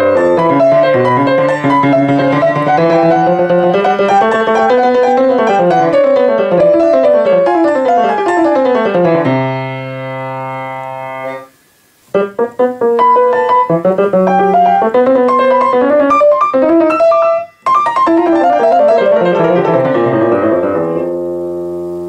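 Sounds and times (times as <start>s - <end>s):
grand piano playing: 0.0s - 11.5s, 12.1s - 22.0s.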